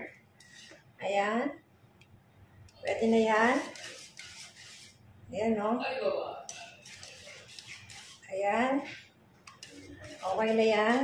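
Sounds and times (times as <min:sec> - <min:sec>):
whisk stirring pudding in a pot: 0:00.0 - 0:01.0, 0:02.7 - 0:05.1, 0:06.5 - 0:08.4, 0:09.4 - 0:11.0
whisk clicking against pot: 0:06.5 - 0:08.2, 0:09.5 - 0:11.0.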